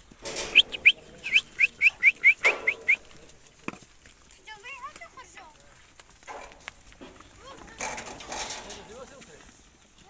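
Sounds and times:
rustling: 0:00.0 - 0:10.0
bird chirping: 0:00.4 - 0:03.4.

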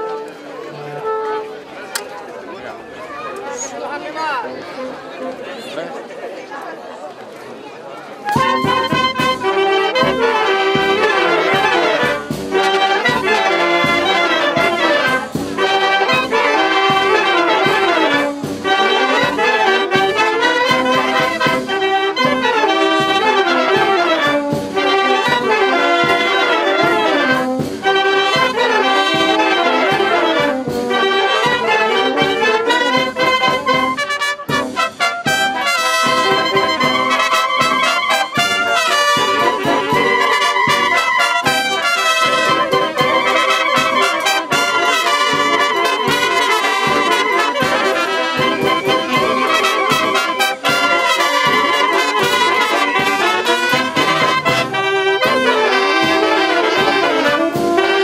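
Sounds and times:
wind band playing dance music: 0:00.0 - 0:02.1, 0:02.7 - 0:06.0, 0:08.2 - 0:58.0.

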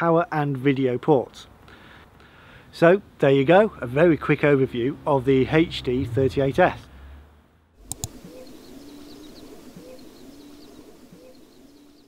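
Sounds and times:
small birds chirping: 0:07.9 - 0:12.0.

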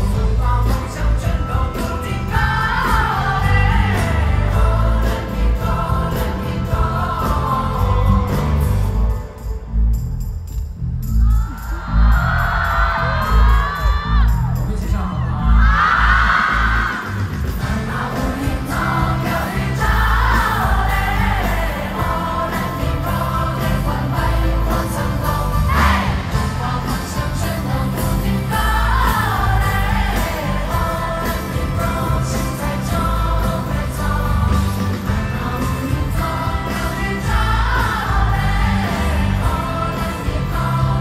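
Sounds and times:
live band with bass and drums: 0:00.0 - 0:09.7, 0:12.1 - 0:41.0.

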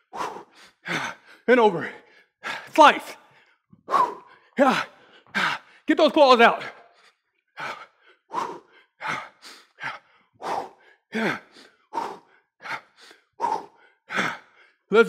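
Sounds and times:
man breathing hard: 0:00.0 - 0:05.9, 0:06.6 - 0:14.9.

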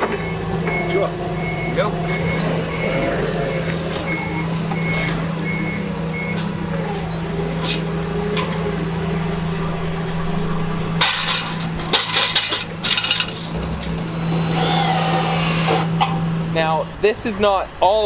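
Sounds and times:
reversing beeper: 0:00.0 - 0:11.8, 0:14.0 - 0:15.8
forklift engine humming: 0:00.0 - 0:18.0
metal ladder clanking and rattling: 0:11.0 - 0:13.5
cordless drill whirring: 0:14.3 - 0:15.9.

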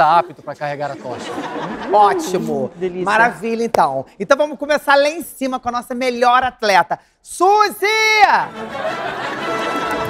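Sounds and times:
music: 0:08.4 - 0:10.0.

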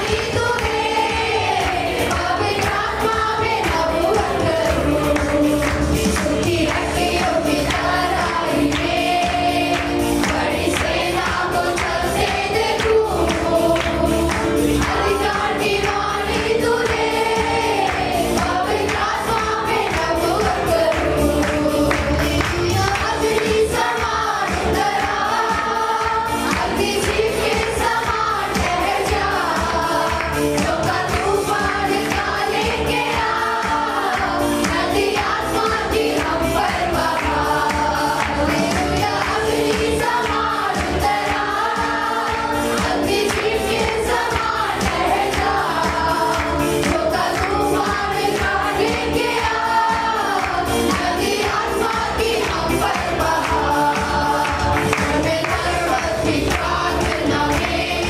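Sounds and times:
arranger keyboard accompaniment: 0:00.0 - 0:58.0
group singing worship song: 0:00.0 - 0:58.0.

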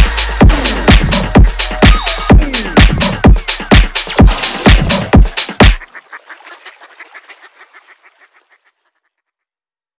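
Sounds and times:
rapid duck quacks: 0:02.8 - 0:09.3.

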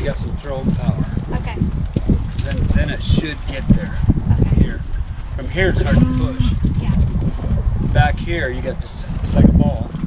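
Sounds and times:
hooves knocking and shuffling: 0:00.0 - 0:10.0
indistinct speech: 0:05.6 - 0:07.0.

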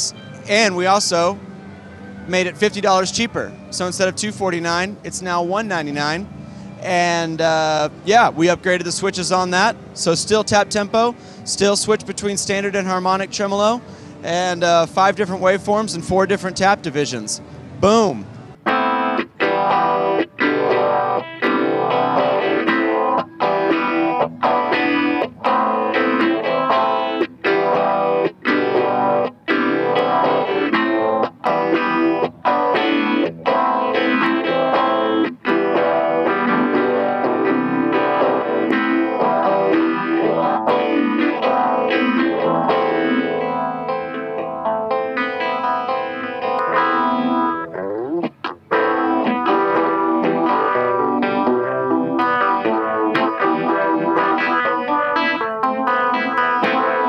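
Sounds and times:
electric guitar through effect pedals: 0:00.0 - 0:57.0.

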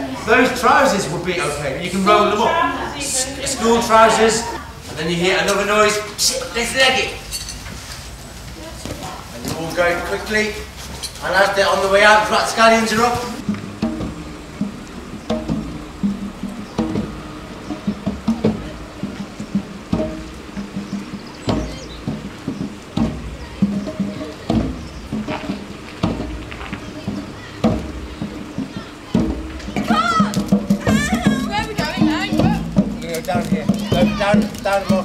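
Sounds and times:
wavering high voices: 0:12.0 - 0:35.0
music with low notes and slow beat: 0:13.3 - 0:35.0.

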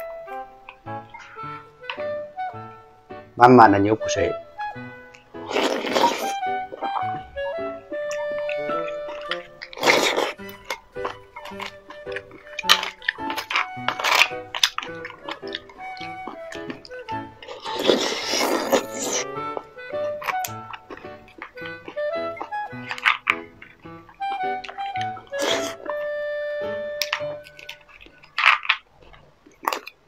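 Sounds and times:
wet mouth sounds of eating: 0:00.0 - 0:02.7, 0:04.6 - 0:30.0
soft background music: 0:00.0 - 0:29.2.

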